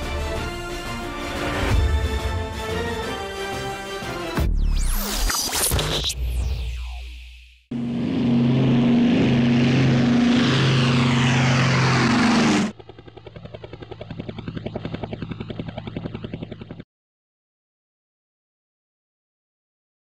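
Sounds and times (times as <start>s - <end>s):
helicopter engine hum: 7.7s - 16.9s
helicopter rotor chop: 7.7s - 16.9s.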